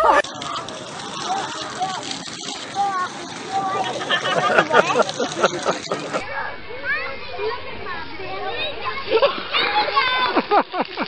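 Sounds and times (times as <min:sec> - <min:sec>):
children playing at a distance: 0:00.0 - 0:11.0.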